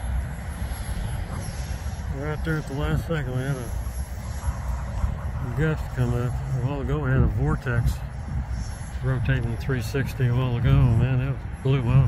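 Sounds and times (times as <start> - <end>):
high-pitched whine: 0.0 - 12.0
wind buffeting microphone: 0.0 - 12.0.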